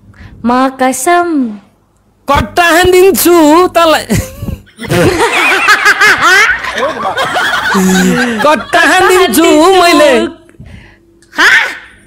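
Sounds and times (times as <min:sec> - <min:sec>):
man laughing: 0:04.1 - 0:09.4
woman laughing high and loud: 0:04.1 - 0:09.7.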